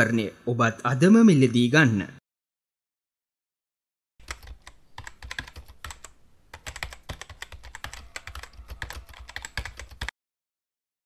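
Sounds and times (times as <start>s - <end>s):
keyboard typing clicks: 4.2s - 10.1s.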